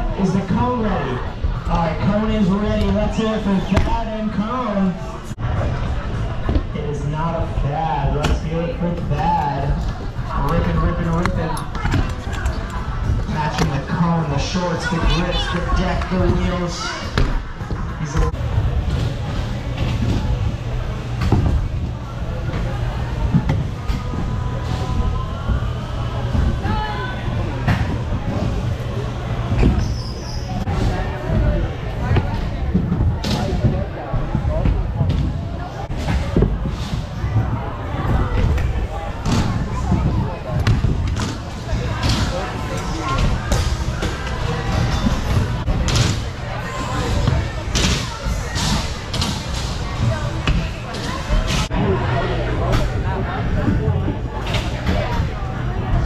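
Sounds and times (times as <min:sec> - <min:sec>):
voices in large hall: 0:00.0 - 0:56.0.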